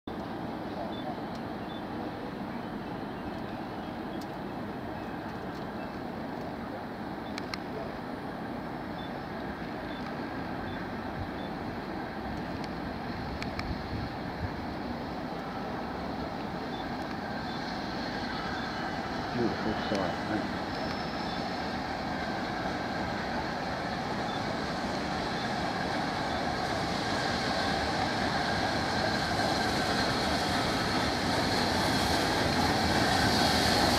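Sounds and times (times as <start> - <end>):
steam locomotive low rumble: 0.1 - 33.9
sharp clicks: 7.3 - 7.7.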